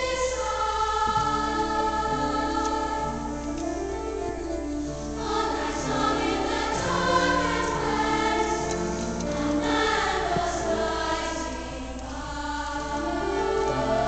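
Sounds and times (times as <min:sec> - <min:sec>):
girls' choir singing: 0:00.0 - 0:14.0.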